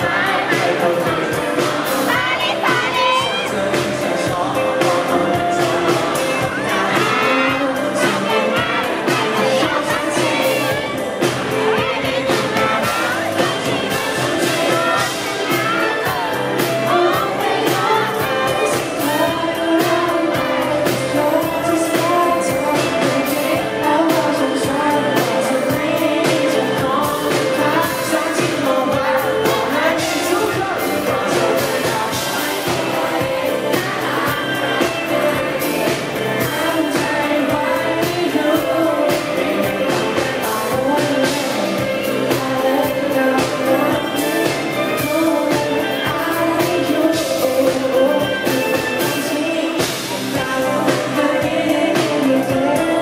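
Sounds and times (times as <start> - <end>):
bass guitar: 0.0 - 53.0
live pop band: 0.0 - 53.0
man singing: 0.0 - 53.0
steady drum beat: 0.0 - 53.0.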